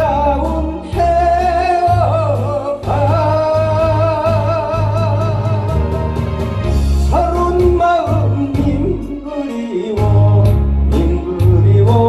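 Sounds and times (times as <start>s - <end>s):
backing track with bass line: 0.0s - 12.0s
man singing with vibrato: 0.0s - 12.0s.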